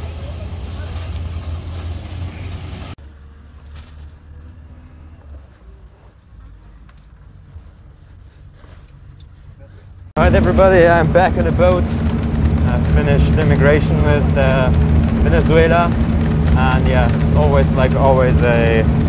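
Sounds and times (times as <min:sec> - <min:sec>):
truck engine rumbling: 0:00.0 - 0:19.0.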